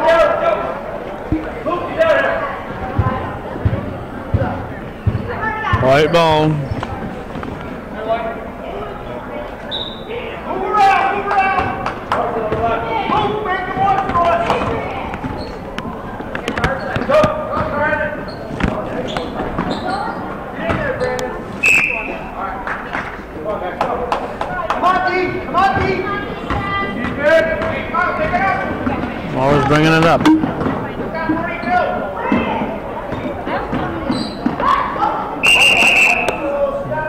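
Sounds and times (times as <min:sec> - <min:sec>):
voices shouting and talking: 0:00.0 - 0:37.0.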